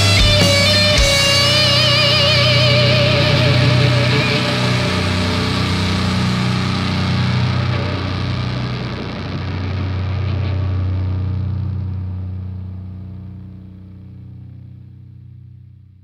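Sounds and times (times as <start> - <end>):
guitar lead note with vibrato: 0.0 - 13.3
distorted electric guitar chord: 0.0 - 16.0.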